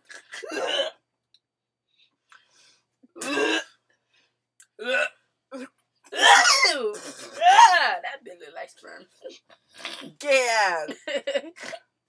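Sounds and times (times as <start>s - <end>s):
person coughing: 6.2s - 7.7s.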